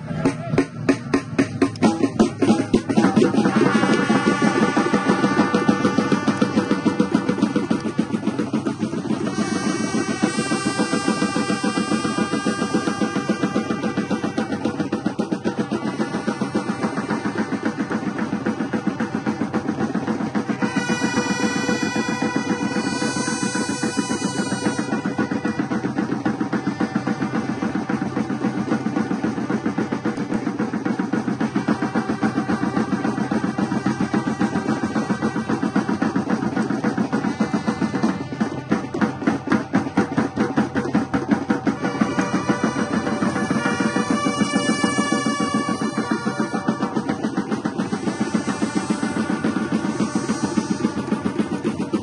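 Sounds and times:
drums beating fast rhythm: 0:00.0 - 0:52.0.

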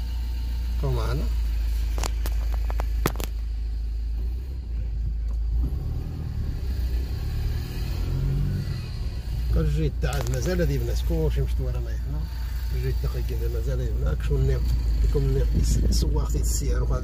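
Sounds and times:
car driving heard from inside: 0:00.0 - 0:17.0.

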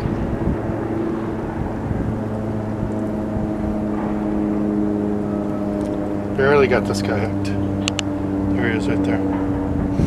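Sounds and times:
motorboat engine humming: 0:00.0 - 0:10.0.

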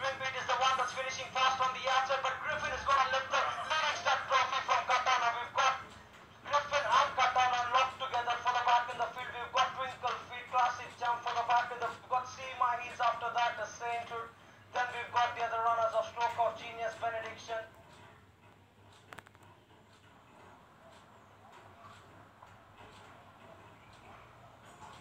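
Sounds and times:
race commentator calling from television: 0:00.0 - 0:17.8.

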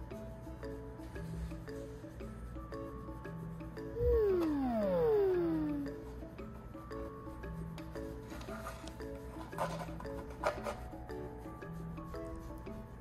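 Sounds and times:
gentle background music: 0:00.0 - 0:13.0
falling whistle sound effect: 0:04.0 - 0:06.0.

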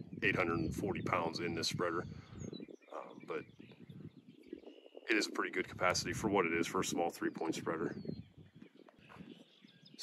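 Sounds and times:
distant bird chirps: 0:00.0 - 0:10.0.

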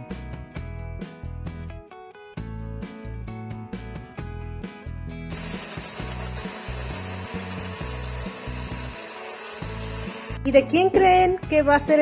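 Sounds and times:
blender crushing ice: 0:05.3 - 0:10.4.

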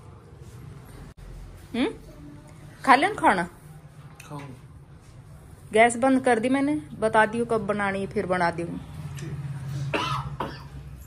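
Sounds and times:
man coughing: 0:09.9 - 0:10.8.

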